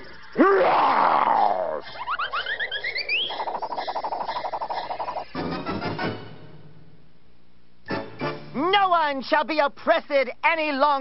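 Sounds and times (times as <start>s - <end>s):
cartoon music: 1.3s - 6.4s.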